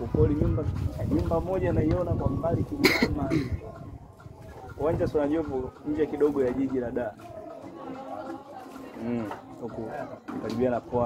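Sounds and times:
person coughing: 2.8s - 3.5s.

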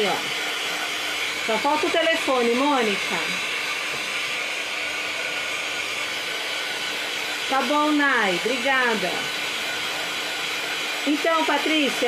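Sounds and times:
heat gun blowing hot air: 0.0s - 12.0s.

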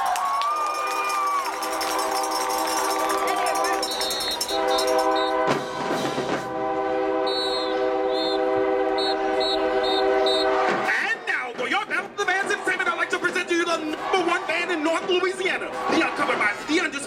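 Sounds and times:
crowd voices: 0.0s - 5.4s, 10.1s - 17.0s
brass band sustained chord: 1.6s - 10.9s.

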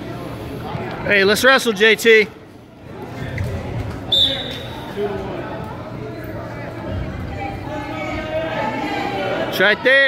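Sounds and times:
whistle blast: 4.1s - 4.9s.

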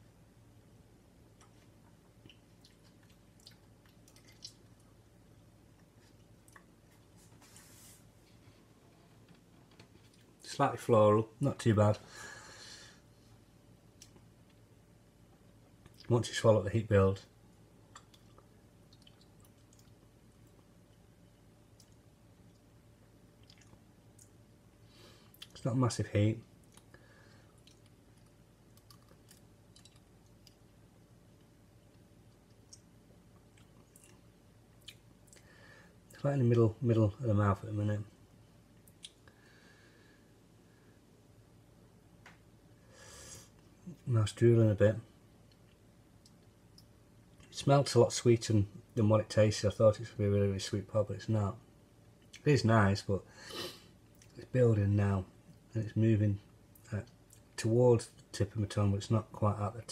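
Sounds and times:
low room hum: 0.0s - 59.9s
wet chewing mouth sounds: 2.2s - 4.9s, 17.9s - 20.1s, 23.4s - 24.3s, 26.6s - 30.6s
lip and tongue clicks: 17.9s - 20.1s, 23.4s - 24.3s, 27.6s - 30.6s
soft mouth clicks: 34.8s - 35.5s, 38.9s - 39.3s.

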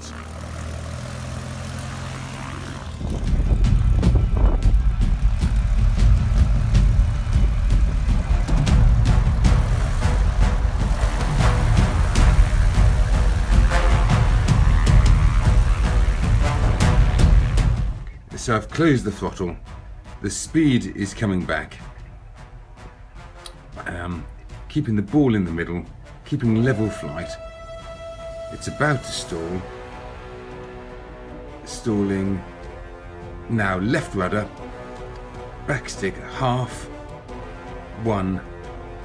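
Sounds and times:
propeller aeroplane engine: 0.0s - 18.4s, 25.9s - 39.0s.

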